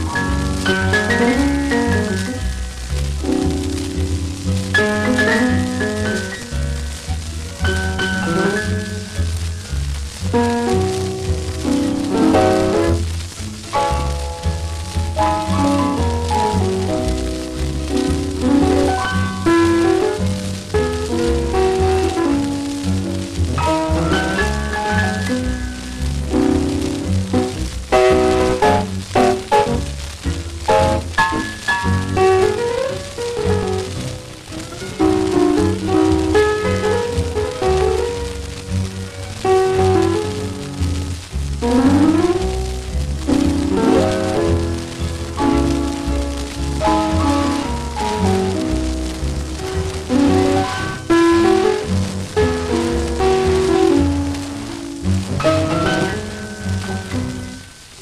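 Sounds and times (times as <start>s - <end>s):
guitar melody with rhythm: 0.0s - 58.0s
old record music: 0.0s - 58.0s
record surface hiss and crackle: 0.0s - 58.0s.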